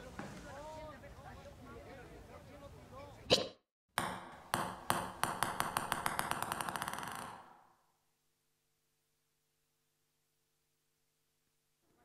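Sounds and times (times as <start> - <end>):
hard object bouncing: 3.3 - 7.6.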